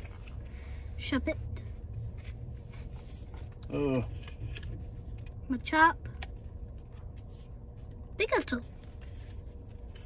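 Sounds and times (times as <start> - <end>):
trading cards being shuffled: 6.1 - 10.0.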